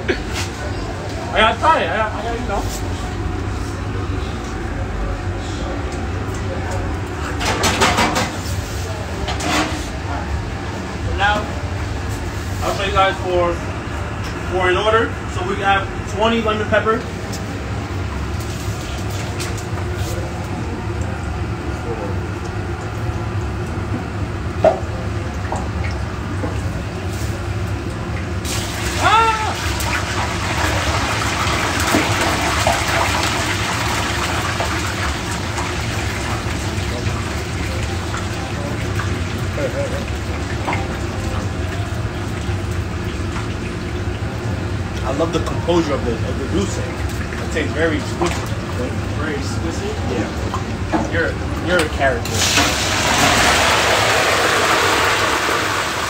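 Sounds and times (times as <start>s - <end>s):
low hum of kitchen equipment: 0.0s - 56.0s
oil sizzling and bubbling: 0.0s - 56.0s.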